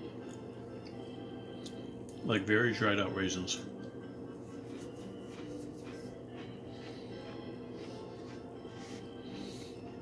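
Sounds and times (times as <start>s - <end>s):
low steady hum: 0.0s - 10.0s
chewing crunchy cookie: 4.5s - 8.8s.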